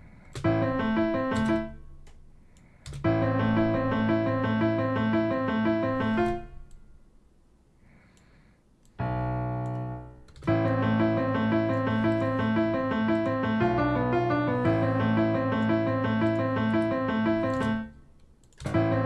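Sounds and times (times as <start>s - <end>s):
minor-key piano melody: 0.0s - 7.4s, 9.0s - 19.0s
piano bass note: 9.0s - 17.9s, 18.7s - 19.0s.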